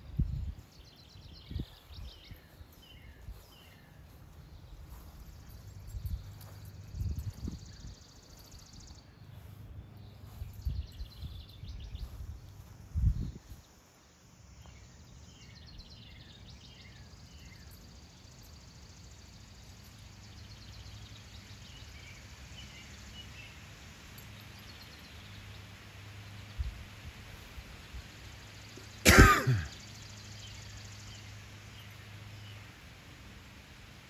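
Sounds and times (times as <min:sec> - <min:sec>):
faint bird chirps: 0:00.2 - 0:13.7
person coughing: 0:29.0 - 0:29.8.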